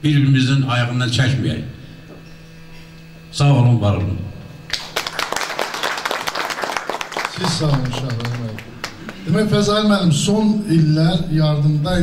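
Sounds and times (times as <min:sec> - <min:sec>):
audience applauding: 0:04.7 - 0:09.4.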